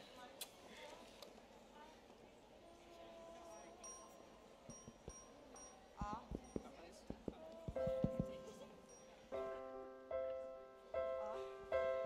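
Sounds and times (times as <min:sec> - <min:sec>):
high chiming pings: 0:03.5 - 0:09.4
soft low knocks: 0:04.7 - 0:08.6.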